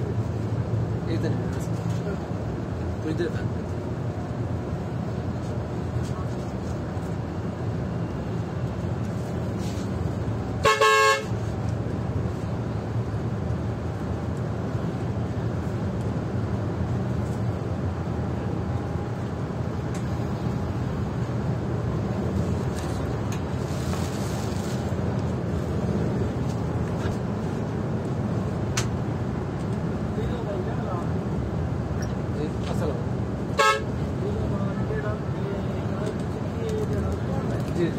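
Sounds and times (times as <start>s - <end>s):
engine and road noise: 0.0s - 37.9s
coach horn blast: 10.6s - 11.3s, 33.6s - 33.9s.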